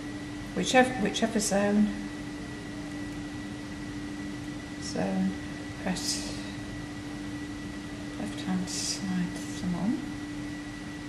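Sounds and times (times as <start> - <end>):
faint high whine: 0.0 - 11.0
machine hum and hiss: 0.0 - 11.0.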